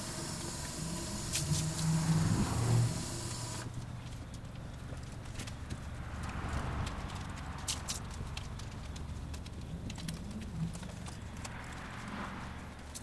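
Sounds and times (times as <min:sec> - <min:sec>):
low machine hum: 0:00.0 - 0:04.0.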